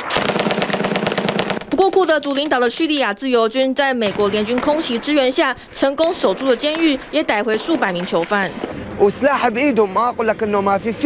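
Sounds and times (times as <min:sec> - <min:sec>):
automatic rifle fire: 0:00.0 - 0:02.5, 0:04.1 - 0:09.1
person speaking: 0:01.7 - 0:11.0.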